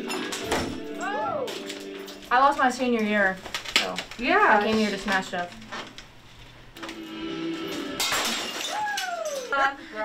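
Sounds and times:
music with steady tones: 0:00.0 - 0:02.6
object smashing with shattering crash: 0:07.9 - 0:09.5.

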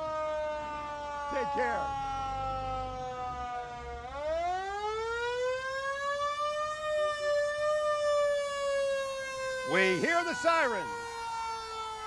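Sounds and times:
fire truck siren wailing: 0:00.0 - 0:12.0.

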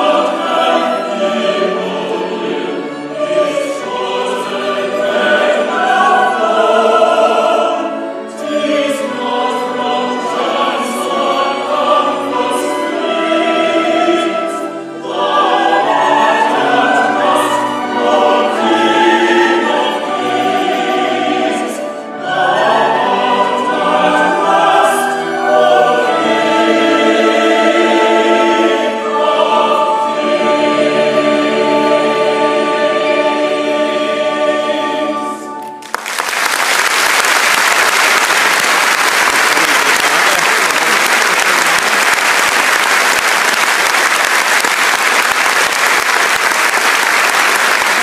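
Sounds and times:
male vocal trio singing: 0:00.0 - 0:35.5
choir singing: 0:00.0 - 0:36.2, 0:37.1 - 0:48.0
orchestral accompaniment: 0:00.0 - 0:36.2.

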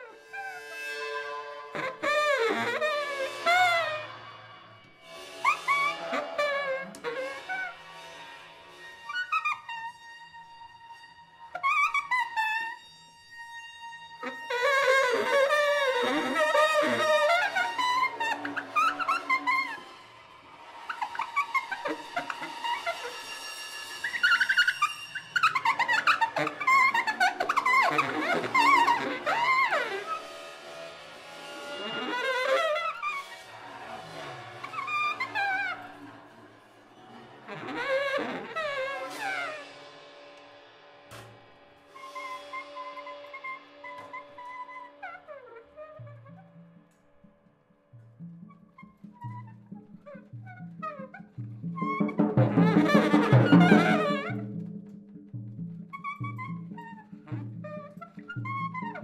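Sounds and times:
baritone saxophone: 0:00.0 - 0:04.1, 0:05.2 - 0:07.9, 0:09.0 - 0:20.0, 0:21.0 - 0:36.2, 0:37.2 - 0:40.0, 0:48.5 - 0:59.0.

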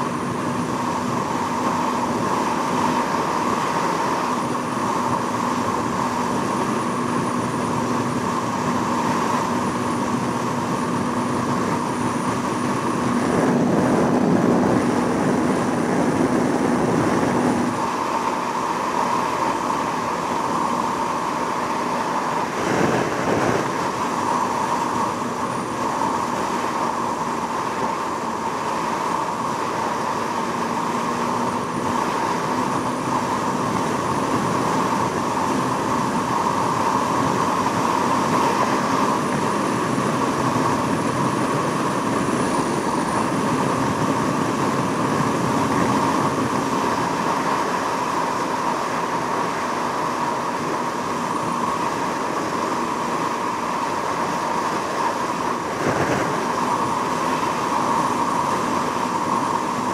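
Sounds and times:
low rush: 0:00.0 - 0:59.9.

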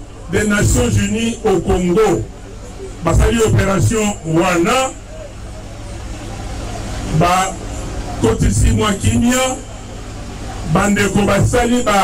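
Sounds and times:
man speaking through loudspeakers: 0:00.0 - 0:05.5, 0:07.1 - 0:09.9, 0:10.6 - 0:12.0.

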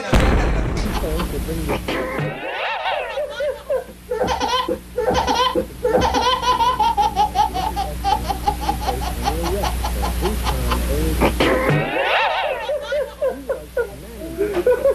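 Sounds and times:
high-pitched laughter: 0:01.9 - 0:14.9.

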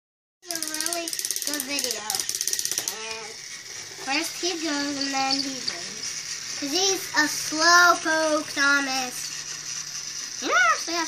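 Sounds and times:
child's voice: 0:00.4 - 0:09.4, 0:10.4 - 0:11.0
toy train motor clicking: 0:00.4 - 0:11.0.

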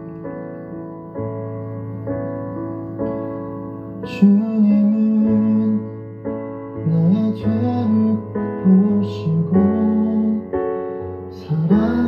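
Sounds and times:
keyboard chords: 0:00.0 - 0:12.0
man singing worship song: 0:04.2 - 0:05.9, 0:06.9 - 0:10.5, 0:11.3 - 0:12.0.

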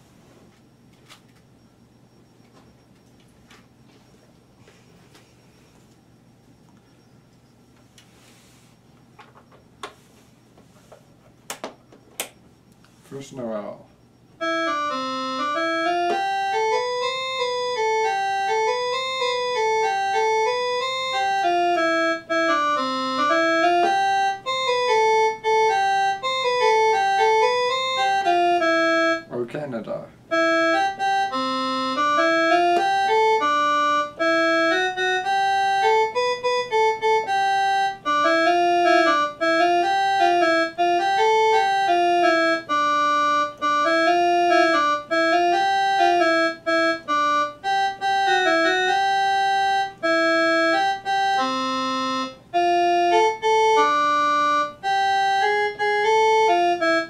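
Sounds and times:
keyboard melody: 0:13.2 - 0:57.0.

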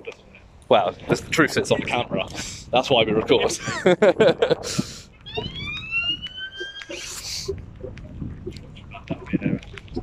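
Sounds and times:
siren rising whoop: 0:05.3 - 0:07.0.

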